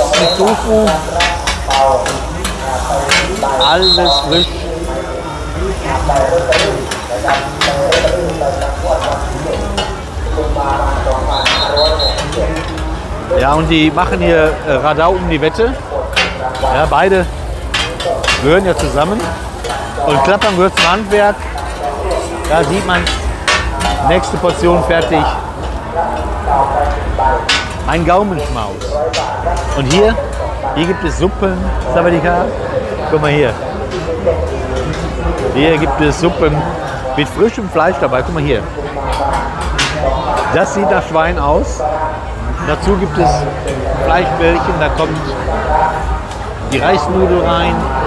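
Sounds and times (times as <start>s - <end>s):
food sizzling: 0.0s - 14.6s, 15.4s - 29.7s.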